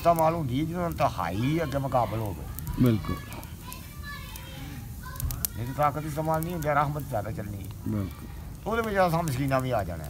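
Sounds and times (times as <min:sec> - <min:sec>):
man speaking: 0:00.0 - 0:03.5, 0:05.6 - 0:10.0
children chattering and playing: 0:00.0 - 0:10.0.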